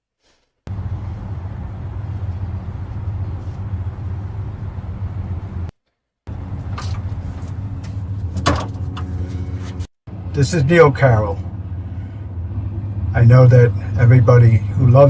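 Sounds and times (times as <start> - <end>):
distant traffic: 0.7 - 5.7, 6.3 - 15.0
low city rumble: 0.7 - 15.0.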